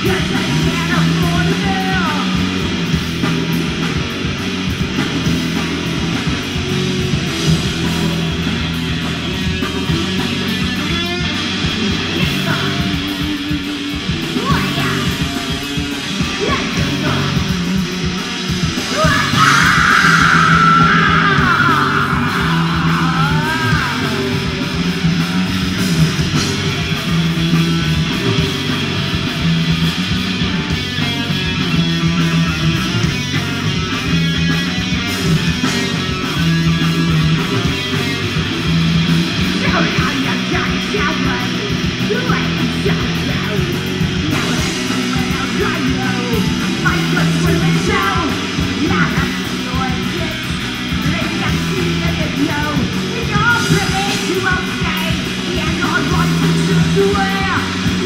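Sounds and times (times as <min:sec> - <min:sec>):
punk rock band playing: 0:00.0 - 0:58.0.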